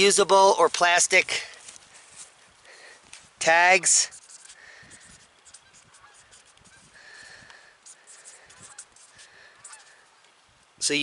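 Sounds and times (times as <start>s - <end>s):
marker scratching and squeaking: 1.6s - 2.4s, 3.4s - 10.2s.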